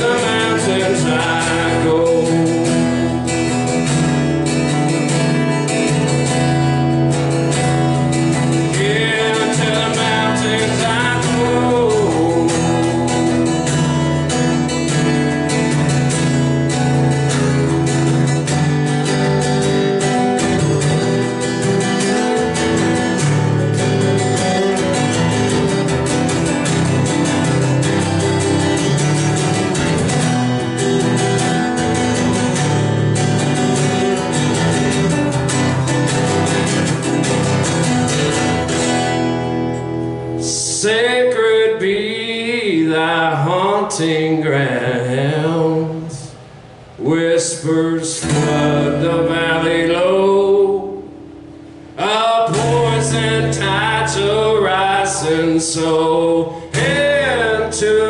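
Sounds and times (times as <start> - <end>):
man singing: 0.0 - 3.9, 8.2 - 15.0, 40.4 - 46.4, 47.0 - 51.1, 52.0 - 58.0
acoustic guitar strumming: 0.0 - 58.0.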